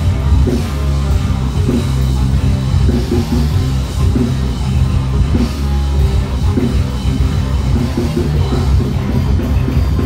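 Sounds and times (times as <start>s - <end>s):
live ska band playing: 0.0s - 10.0s.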